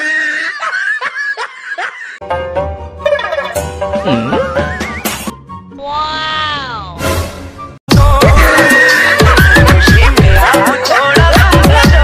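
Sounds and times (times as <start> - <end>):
person laughing: 0.0 - 2.2, 4.0 - 5.0.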